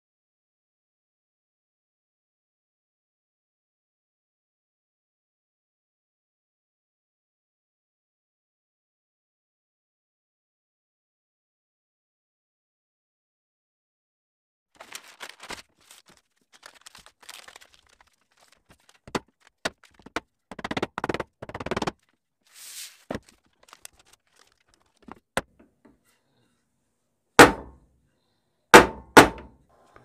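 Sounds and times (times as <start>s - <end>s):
paper rustling: 14.8s - 25.3s.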